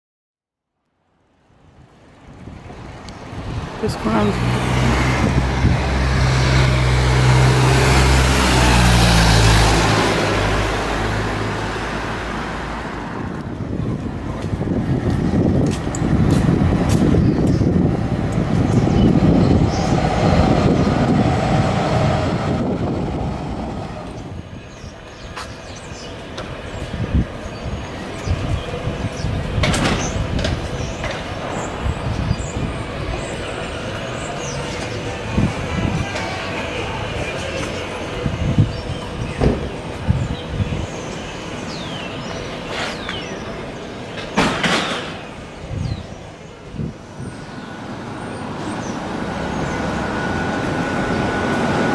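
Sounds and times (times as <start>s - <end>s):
passing traffic rush: 1.0s - 51.9s.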